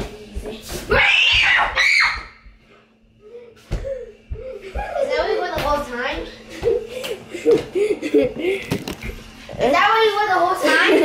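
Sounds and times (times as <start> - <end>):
child screaming: 0.9 - 2.4.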